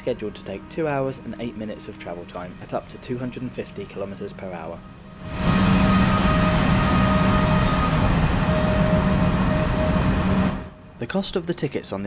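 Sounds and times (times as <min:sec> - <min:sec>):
high whine: 0:00.0 - 0:11.2
train rolling noise: 0:00.0 - 0:11.8
train low hum: 0:00.0 - 0:12.0.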